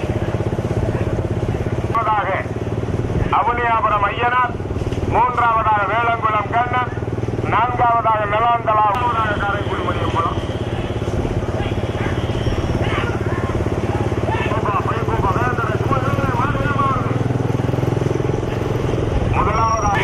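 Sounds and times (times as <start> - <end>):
vehicle engine running: 0.0 - 20.0.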